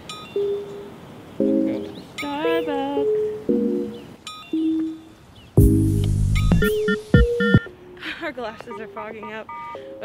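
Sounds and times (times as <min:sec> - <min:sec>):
background music melody: 0:00.0 - 0:10.0.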